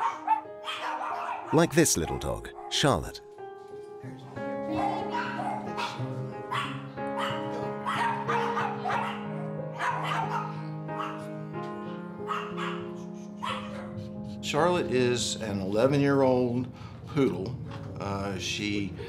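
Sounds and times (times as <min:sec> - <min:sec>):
dog barking and yipping: 0:00.0 - 0:01.6, 0:04.7 - 0:11.2, 0:12.2 - 0:14.1
background music with held notes: 0:00.0 - 0:19.0.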